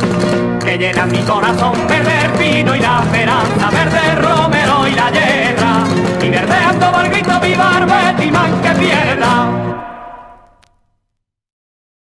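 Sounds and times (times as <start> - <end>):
flamenco-style guitar: 0.0 - 10.8
person singing: 0.6 - 10.6.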